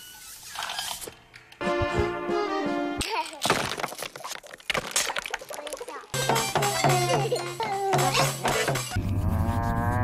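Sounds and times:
accordion with drum beats: 1.6s - 3.0s.

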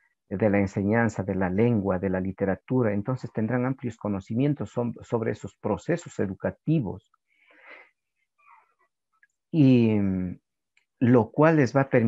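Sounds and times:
man breathing in: 7.3s - 8.0s.

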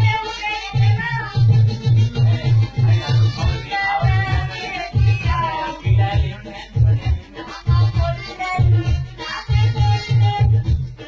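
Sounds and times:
dance music with heavy bass: 0.0s - 11.0s.

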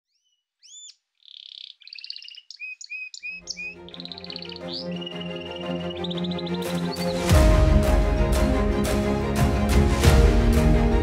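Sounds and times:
music with low backing: 4.0s - 11.0s.

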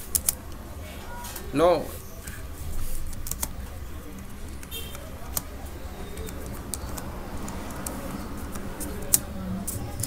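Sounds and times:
keyboard key clicks: 3.1s - 5.5s, 6.1s - 9.3s.

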